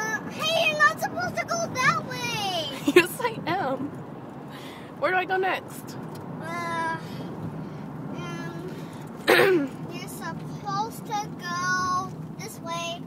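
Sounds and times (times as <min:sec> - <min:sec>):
car road noise: 0:00.0 - 0:13.0.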